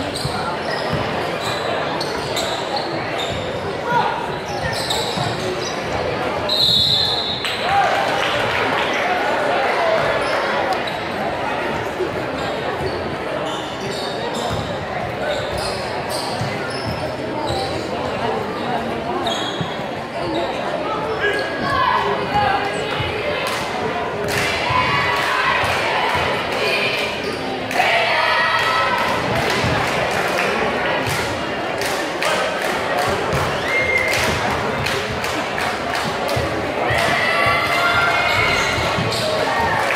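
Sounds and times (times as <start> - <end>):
crowd chatter echoing: 0.0 - 39.9.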